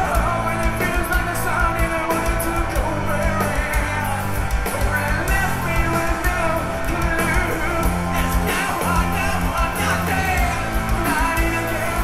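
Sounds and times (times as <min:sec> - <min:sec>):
bass guitar: 0:00.0 - 0:12.0
drums with cymbals: 0:00.0 - 0:12.0
electric guitars: 0:00.0 - 0:12.0
person singing: 0:00.0 - 0:12.0.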